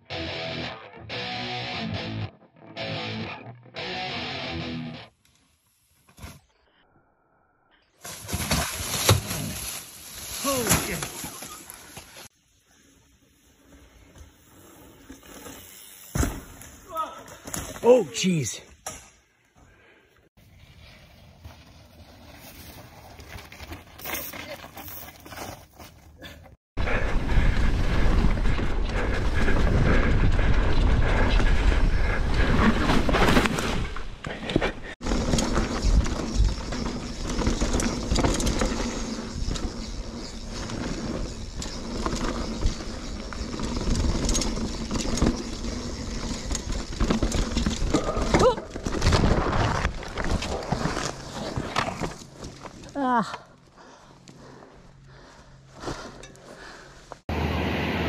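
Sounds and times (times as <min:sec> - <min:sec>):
bike tyre trail noise: 0:07.9 - 0:17.9, 0:19.6 - 0:57.9
bike knocking and rattling: 0:34.2 - 0:52.8.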